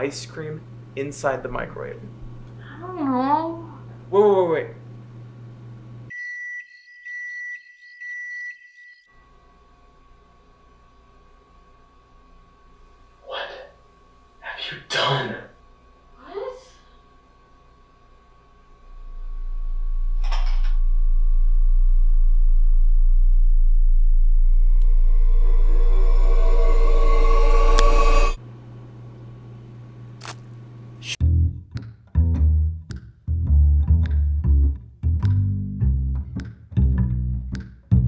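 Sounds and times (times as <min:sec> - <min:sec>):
low room hum: 0:00.0 - 0:06.1, 0:09.2 - 0:31.2
microwave oven beeping: 0:06.1 - 0:09.6
deep bass drone: 0:18.8 - 0:28.4, 0:31.2 - 0:38.0.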